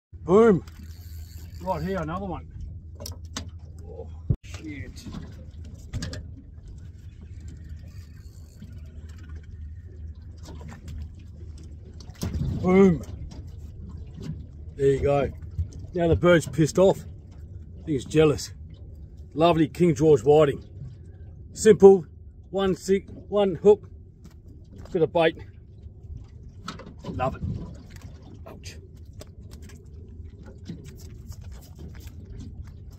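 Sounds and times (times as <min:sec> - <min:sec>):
boat engine idling: 0:00.2 - 0:12.0.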